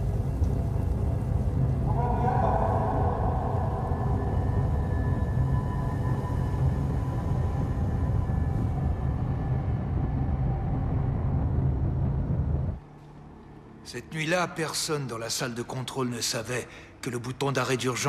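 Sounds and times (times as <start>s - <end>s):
heavy low rumble: 0.0s - 12.9s.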